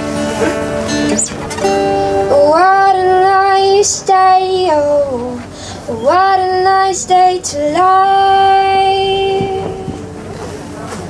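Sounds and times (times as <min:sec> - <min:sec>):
woman singing into microphone: 0:02.1 - 0:10.2.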